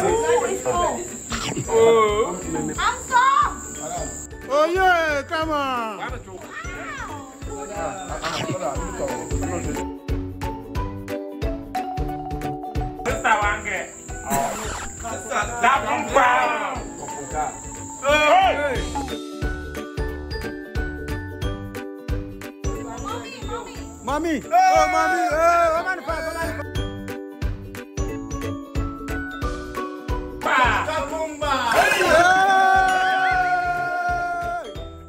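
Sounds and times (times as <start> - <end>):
high-pitched insect-like drone: 0.0 - 4.4, 6.3 - 9.8, 13.0 - 19.2, 22.7 - 26.6, 30.7 - 32.3
people chattering and exclaiming: 0.0 - 9.8, 13.2 - 19.2, 22.7 - 26.7, 30.4 - 34.8
crickets chirring: 0.0 - 9.9, 12.8 - 19.6, 22.6 - 26.6, 30.4 - 32.3
background music: 0.0 - 35.0
people talking: 6.6 - 9.8.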